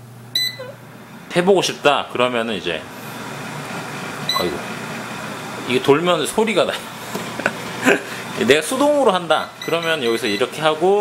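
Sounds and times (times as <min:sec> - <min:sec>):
air fryer fan running: 0:00.0 - 0:11.0
short electronic beep: 0:00.4 - 0:00.7, 0:04.3 - 0:04.6.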